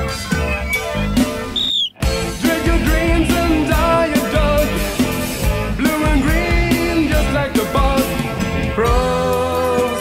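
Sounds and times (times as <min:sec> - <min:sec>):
progressive metal band music: 0:01.2 - 0:10.0.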